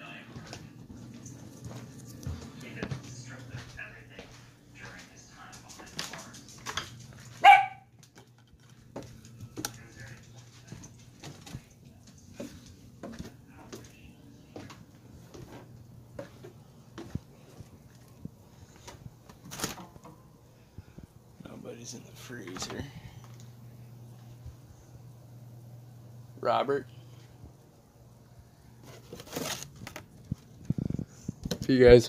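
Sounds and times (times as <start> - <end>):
steady footsteps: 0.0 - 21.5
dog barking loudly: 7.4 - 7.9.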